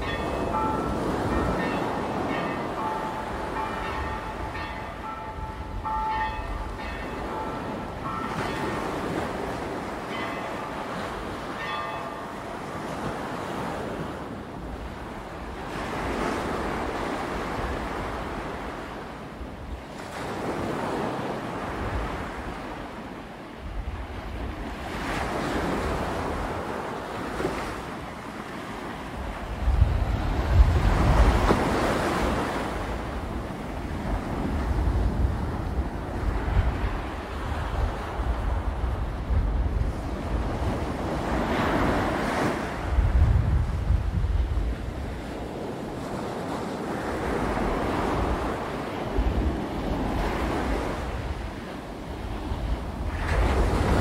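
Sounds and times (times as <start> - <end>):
wind buffeting microphone: 23.6 - 54.0.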